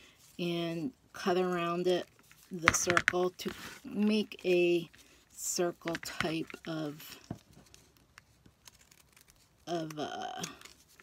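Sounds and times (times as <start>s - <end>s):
paper rustling: 3.4s - 11.0s.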